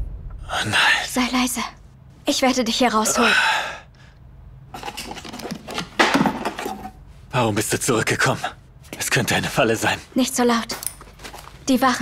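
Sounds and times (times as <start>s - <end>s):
wood and metal knocks and scrapes: 4.7s - 7.0s.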